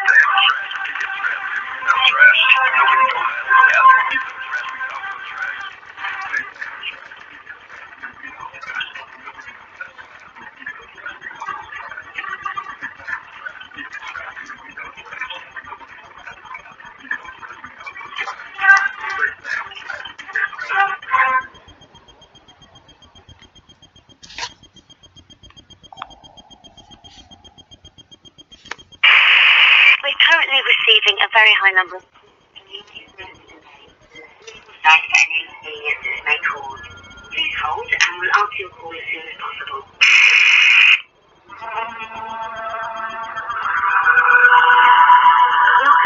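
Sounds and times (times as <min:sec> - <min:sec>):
crackly phone loudspeaker audio: 0:00.0 - 0:46.0.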